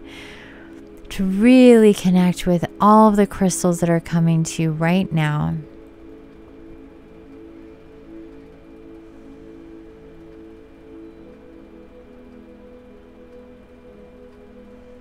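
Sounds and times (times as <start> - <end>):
droning meditation music: 0.0 - 15.0.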